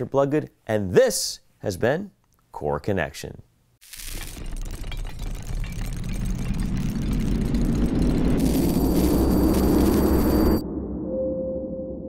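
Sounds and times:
low rumble: 0:04.3 - 0:12.0
rumbling whoosh: 0:04.3 - 0:12.0
high shimmering ring: 0:08.4 - 0:10.6.

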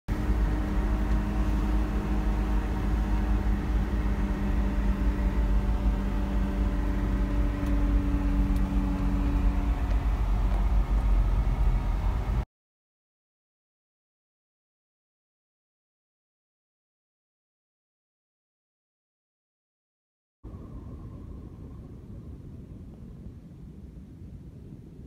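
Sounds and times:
car engine hum: 0:00.1 - 0:12.5
road rumble inside car: 0:00.1 - 0:12.5, 0:20.5 - 0:25.0.

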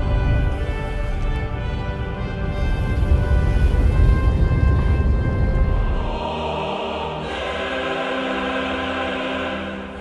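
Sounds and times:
heavy low rumble: 0:00.0 - 0:07.9.

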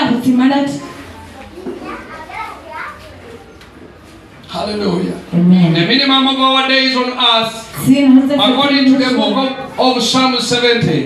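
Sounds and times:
children chattering: 0:00.5 - 0:05.9
amplified preaching: 0:04.5 - 0:11.0.

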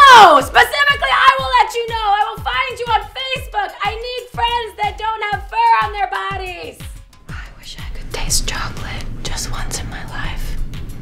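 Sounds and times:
background music with low beat: 0:00.0 - 0:11.0
woman whispering: 0:07.3 - 0:10.6.

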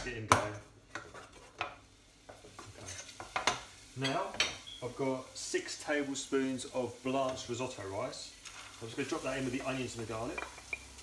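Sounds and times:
spoon stirring in frying pan: 0:00.6 - 0:11.0.

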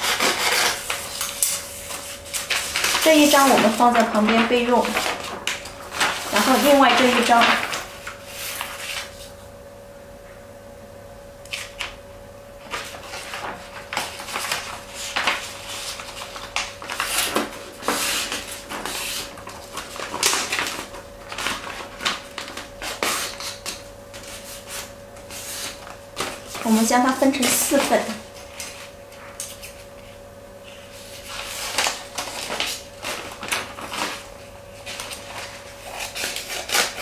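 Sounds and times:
paper rustling and crackling: 0:00.0 - 0:09.4, 0:12.6 - 0:37.0.

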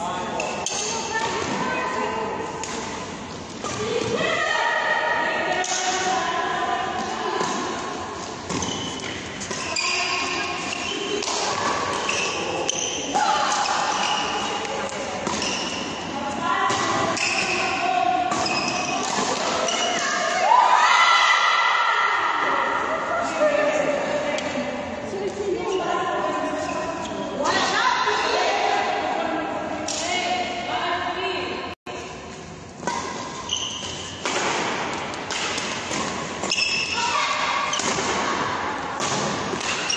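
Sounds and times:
voices in a hall: 0:00.0 - 0:39.9
racket striking shuttlecock: 0:32.8 - 0:39.9.

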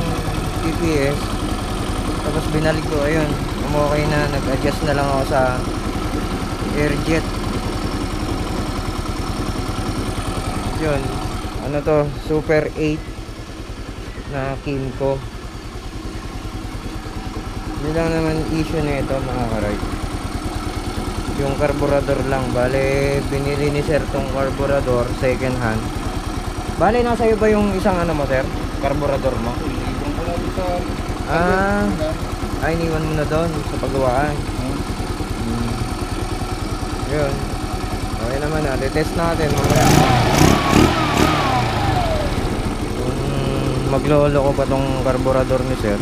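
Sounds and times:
scooter engine idling: 0:00.0 - 0:46.0.

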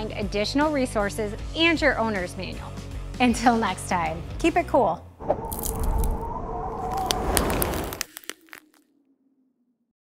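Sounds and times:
ice crackling and cracking: 0:05.5 - 0:08.8.

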